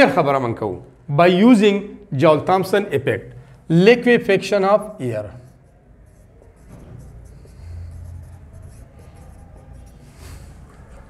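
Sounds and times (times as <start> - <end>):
marker squeaking on whiteboard: 5.2 - 11.0.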